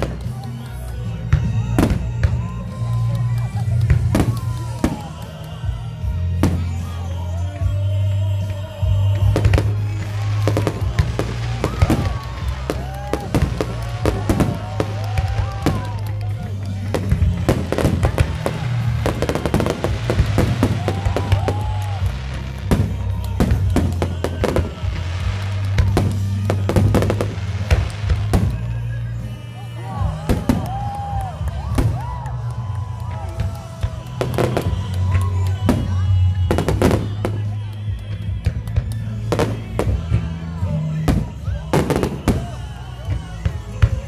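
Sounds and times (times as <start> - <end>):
fireworks bangs and crackling: 0.0 - 44.0
music with bass line: 0.0 - 44.0.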